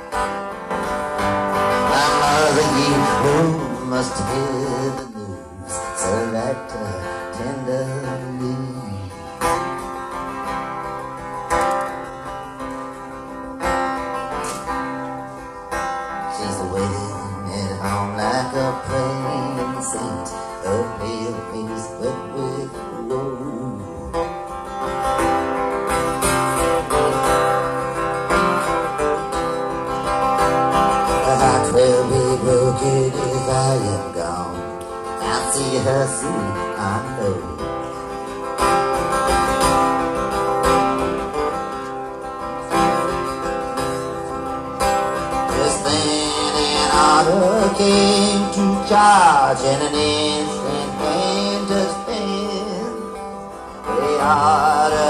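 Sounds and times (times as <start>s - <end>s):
acoustic guitar picking and strumming: 0.0s - 55.0s.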